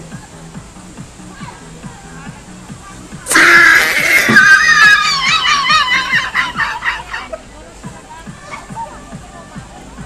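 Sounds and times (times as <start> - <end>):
faint dance music: 0.0 - 10.0
woman shrieking: 3.3 - 6.6
woman laughing: 5.0 - 7.5.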